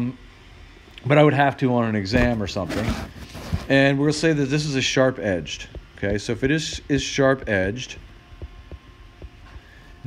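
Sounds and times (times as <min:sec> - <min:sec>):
low electrical hum: 0:00.0 - 0:10.0
stylus tapping on tablet screen: 0:05.6 - 0:09.4.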